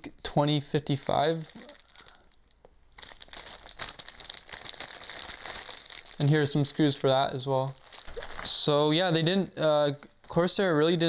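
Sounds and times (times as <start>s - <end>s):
plastic packaging crinkling: 1.0s - 11.0s.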